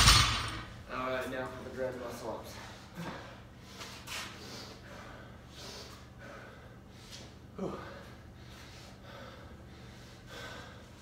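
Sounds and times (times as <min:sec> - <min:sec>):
person breathing hard: 0:02.6 - 0:11.0.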